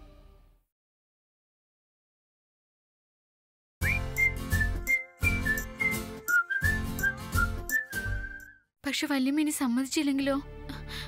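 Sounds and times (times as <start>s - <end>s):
whistled jingle over pulsing beat: 3.8s - 8.6s.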